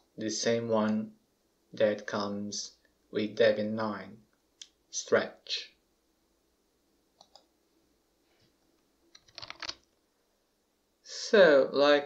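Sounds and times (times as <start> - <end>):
mouse clicks: 7.2 - 7.5.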